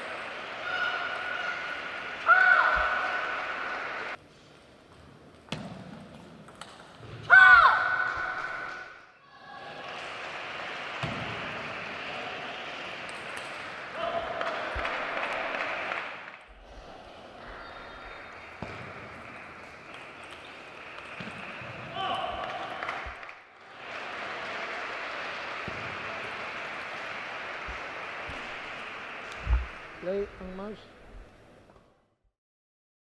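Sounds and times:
reverberant sports hall background: 0:00.0 - 0:32.2
player shouting: 0:00.6 - 0:04.1, 0:21.9 - 0:22.7.

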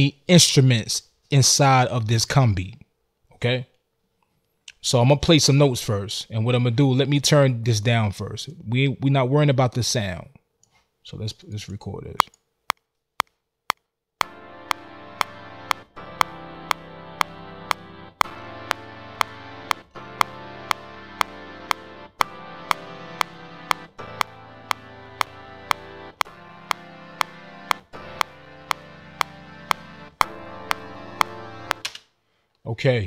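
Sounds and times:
big band chords: 0:14.2 - 0:31.8
metronome clicks: 0:14.2 - 0:31.9.

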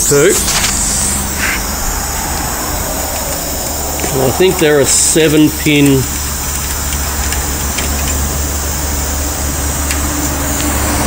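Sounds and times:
electric motor humming: 0:00.0 - 0:11.0.

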